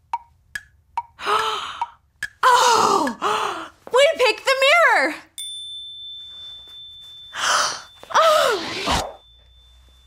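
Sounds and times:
woman gasping: 1.2s - 3.8s.

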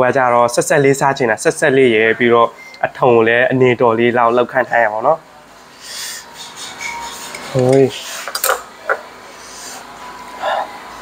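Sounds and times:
spoon and chopsticks clinking bowl: 7.4s - 9.0s.

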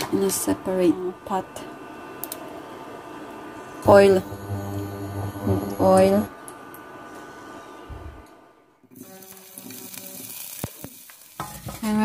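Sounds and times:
faint steady tones: 1.6s - 9.6s.

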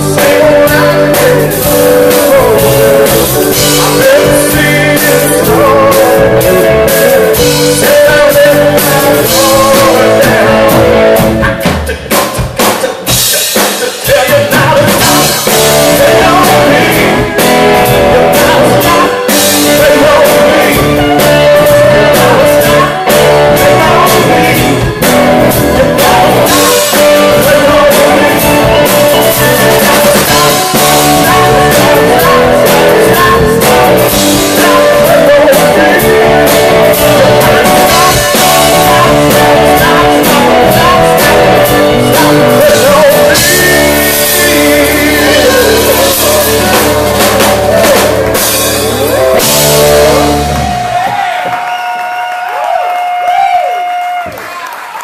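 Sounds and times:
drum kit: 0.0s - 54.4s
man singing lead: 0.0s - 54.4s
electric guitar: 0.0s - 54.6s.

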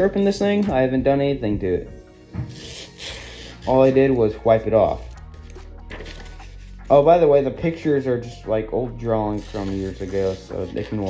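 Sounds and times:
paper crackling against axe blade: 3.0s - 6.8s, 9.3s - 11.0s
paper rustling: 3.6s - 7.0s, 9.4s - 11.0s.

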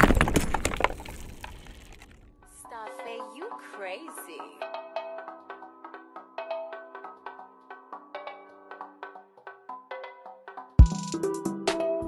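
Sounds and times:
falling debris clatter: 0.0s - 2.3s
stone shattering: 0.0s - 2.3s.

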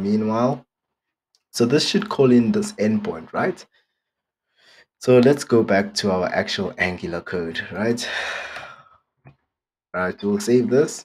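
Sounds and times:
person sighing: 8.0s - 9.0s.

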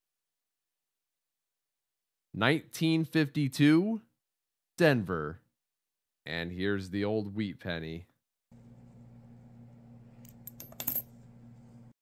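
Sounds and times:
coins clicking together: 10.2s - 11.1s.

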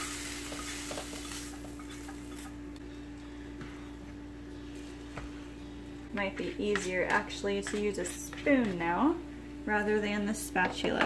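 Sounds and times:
faint sizzle: 0.0s - 4.9s.

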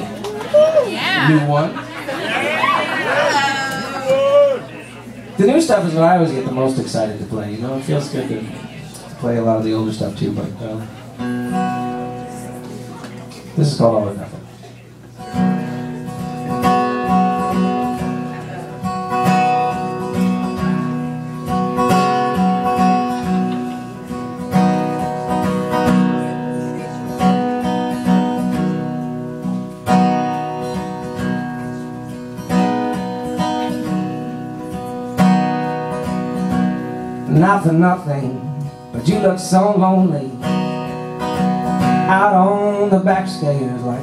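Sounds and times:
acoustic guitar strumming: 9.2s - 14.3s, 15.1s - 44.0s.

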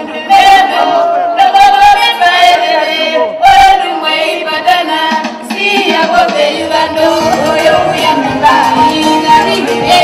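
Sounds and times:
music: 0.0s - 10.0s
voices singing loudly: 0.0s - 10.0s.

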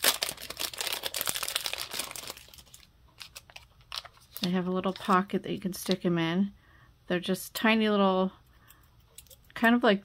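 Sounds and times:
plastic packaging crinkling: 0.0s - 6.0s.

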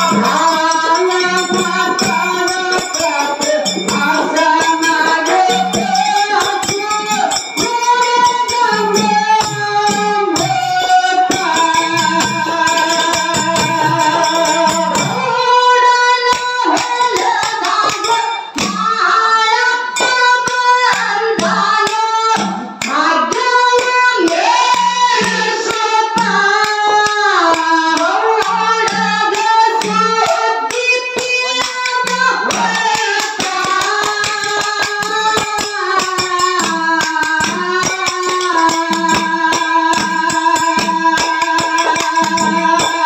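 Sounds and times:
woman singing: 0.0s - 43.0s.

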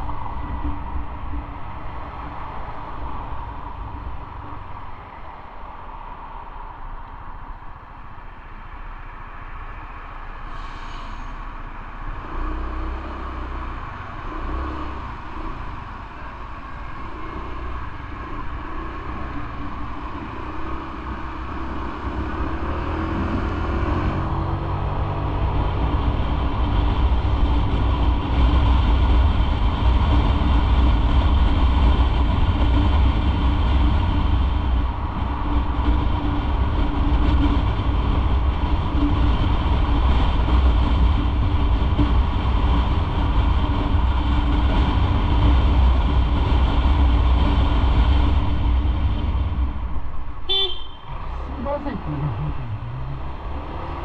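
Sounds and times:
wind and road noise: 0.0s - 54.0s
motorcycle engine rumble: 11.3s - 54.0s.

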